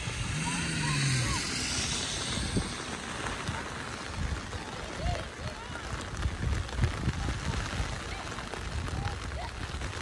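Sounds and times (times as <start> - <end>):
distant shouts: 0.0 - 4.1
low hum: 0.0 - 4.3
rain and wind on microphone: 0.0 - 10.0.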